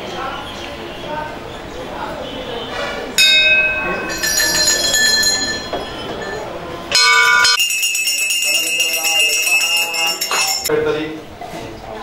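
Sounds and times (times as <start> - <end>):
fast bright hand bell ringing: 3.2 - 10.7
temple bell ringing: 3.2 - 10.7.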